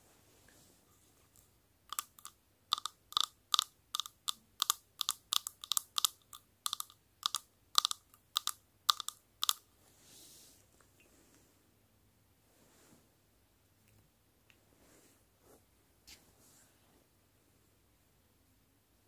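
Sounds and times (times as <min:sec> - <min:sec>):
fingernails tapping on watch: 0:01.9 - 0:09.6.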